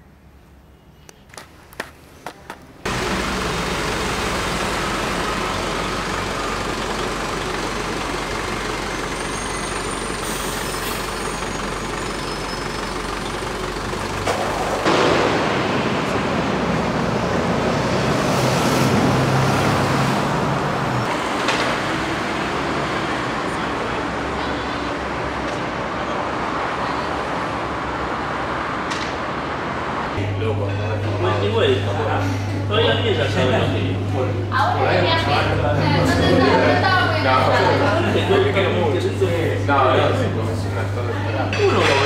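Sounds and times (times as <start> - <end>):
city street traffic: 0.0 - 42.0.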